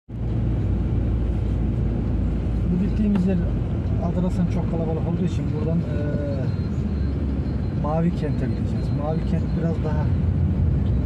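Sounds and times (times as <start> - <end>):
car engine and tyre rumble: 0.1 - 11.0.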